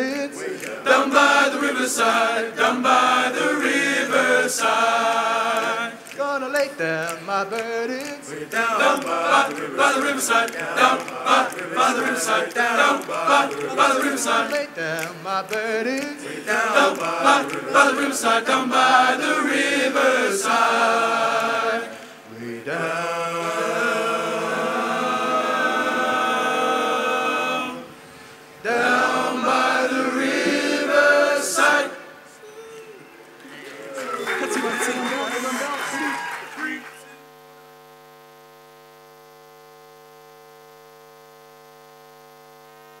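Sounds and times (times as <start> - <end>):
gospel choir holding a chord: 0.0 - 36.9
steady electrical hum: 0.0 - 43.0.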